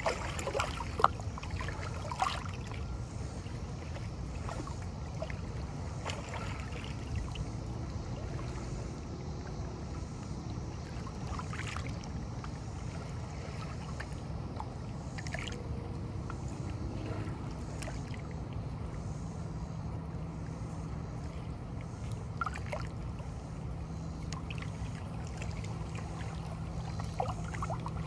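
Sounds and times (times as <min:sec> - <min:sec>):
lake waves lapping on boulders: 0:00.0 - 0:08.8, 0:21.2 - 0:28.0
water splashes: 0:00.0 - 0:28.0.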